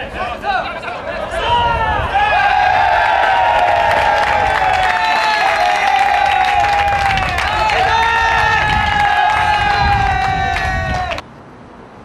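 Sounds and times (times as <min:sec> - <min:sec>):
long drawn-out shout: 0:00.0 - 0:11.2
people clapping and cheering: 0:02.0 - 0:11.2.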